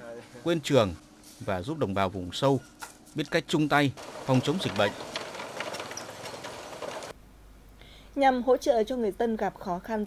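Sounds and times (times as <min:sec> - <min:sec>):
wooden planks rattling: 0:04.0 - 0:07.2.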